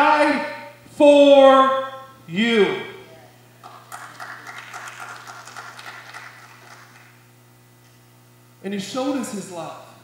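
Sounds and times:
sparse clapping: 3.6s - 7.2s.

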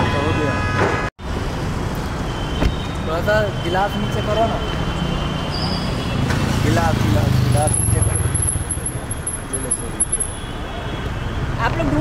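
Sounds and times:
traffic and engine rumble: 0.0s - 12.0s.

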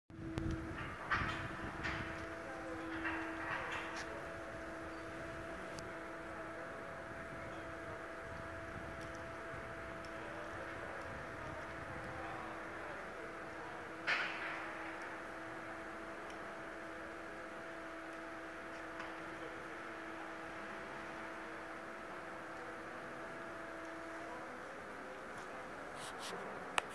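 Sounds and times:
steady machine hum: 0.1s - 26.9s.

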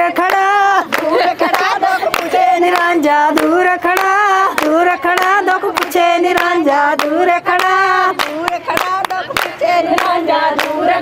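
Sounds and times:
group clapping to the beat: 0.0s - 11.0s
women singing long held notes: 0.0s - 11.0s.

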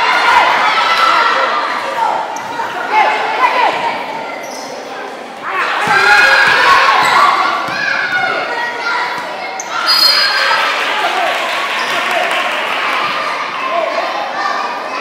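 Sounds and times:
players and spectators shouting: 0.0s - 4.8s, 5.4s - 15.0s.

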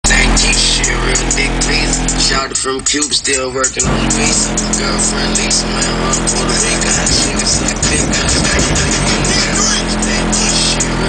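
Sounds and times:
deep bass: 0.0s - 11.0s
rap music through car subwoofers: 0.0s - 11.0s.

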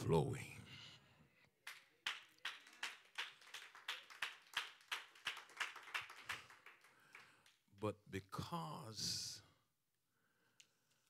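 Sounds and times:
rhythmic hand clapping: 1.6s - 7.6s.

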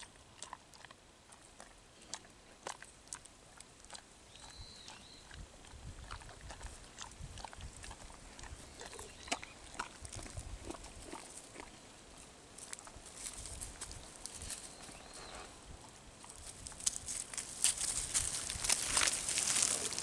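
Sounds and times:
dog chewing with crunches: 0.0s - 11.8s, 16.2s - 20.0s
dogs sniffing leaf litter: 16.2s - 20.0s.

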